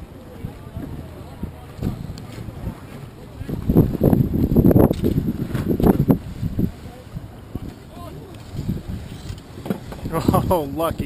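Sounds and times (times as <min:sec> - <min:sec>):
water around a boat: 0:00.0 - 0:11.0
wind buffeting microphone: 0:00.0 - 0:11.0.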